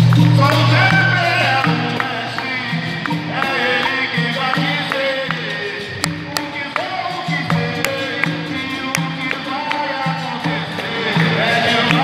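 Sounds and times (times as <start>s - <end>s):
atabaque drum: 0.0s - 12.0s
berimbaus playing rhythm: 0.0s - 12.0s
pandeiros: 0.0s - 12.0s
people singing: 0.2s - 12.0s.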